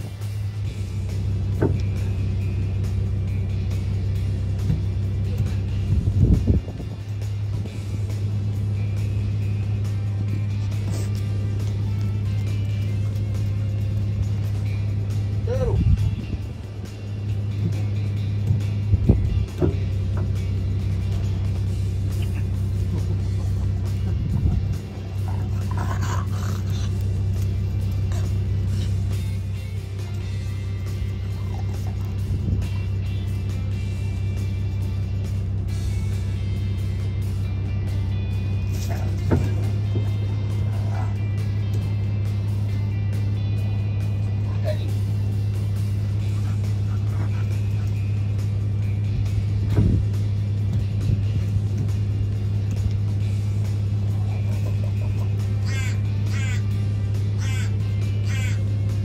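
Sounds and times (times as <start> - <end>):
background music: 0.0 - 59.0
steady low hum: 0.0 - 59.0.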